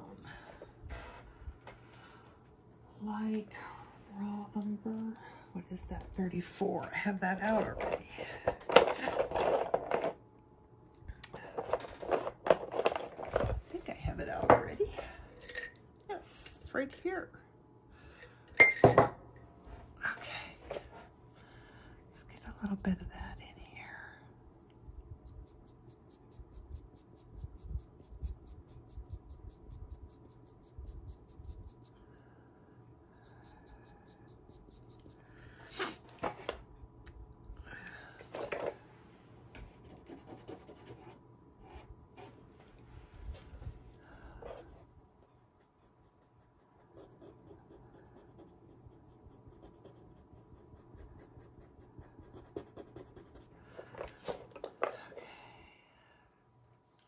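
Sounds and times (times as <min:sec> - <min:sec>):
pencil scratching on paper: 0:25.1 - 0:32.0, 0:33.2 - 0:35.3, 0:39.8 - 0:42.4, 0:43.6 - 0:53.9.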